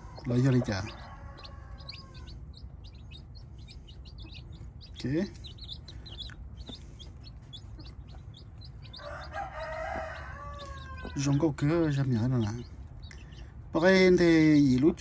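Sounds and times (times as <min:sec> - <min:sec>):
chicks peeping: 0:00.0 - 0:14.8.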